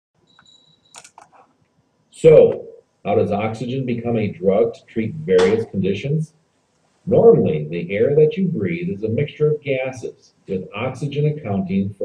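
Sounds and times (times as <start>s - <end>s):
faint high whine: 0.2s - 12.0s
computer mouse clicks: 0.4s - 1.4s.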